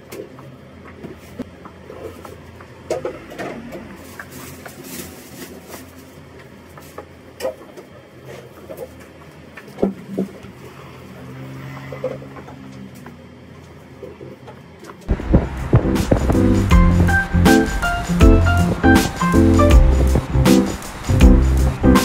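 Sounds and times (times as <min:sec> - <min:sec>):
low hum: 0:15.1 - 0:22.0.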